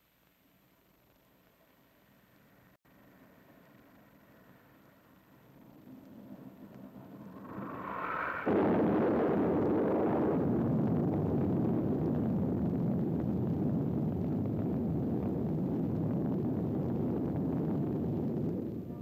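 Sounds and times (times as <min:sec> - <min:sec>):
long rolling rumble: 0:02.9 - 0:19.0
explosion boom: 0:06.8 - 0:19.0.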